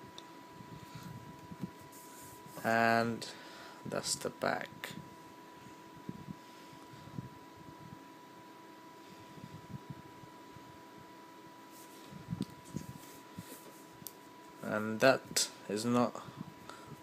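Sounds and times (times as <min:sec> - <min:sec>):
faint high whine: 0:00.0 - 0:17.0.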